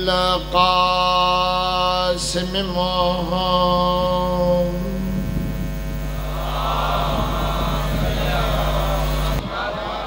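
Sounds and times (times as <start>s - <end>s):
electrical mains hum: 0.0s - 10.0s
wash of higher noise: 0.0s - 10.0s.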